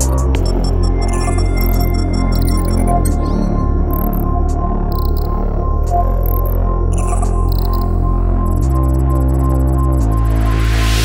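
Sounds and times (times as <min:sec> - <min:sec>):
heavy synth bass: 0:00.0 - 0:11.0
high-pitched chirping blips: 0:03.9 - 0:04.2, 0:04.9 - 0:05.4, 0:06.0 - 0:08.0.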